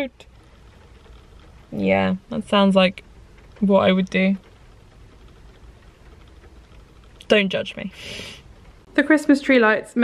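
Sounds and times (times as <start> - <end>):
rain on car roof: 0.0 - 10.0.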